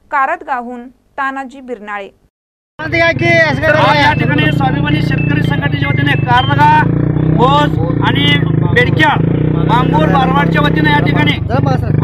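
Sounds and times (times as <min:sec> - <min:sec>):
men speaking loudly: 0:02.8 - 0:12.0
vehicle engine idling: 0:02.8 - 0:12.0.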